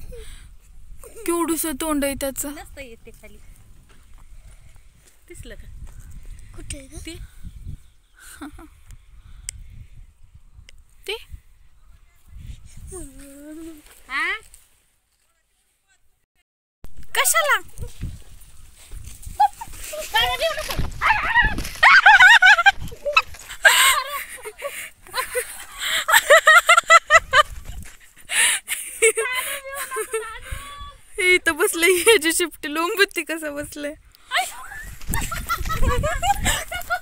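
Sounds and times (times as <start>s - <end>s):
low wind rumble: 0.0s - 13.3s, 17.2s - 28.3s, 33.4s - 37.0s
microphone handling noise: 17.6s - 23.6s.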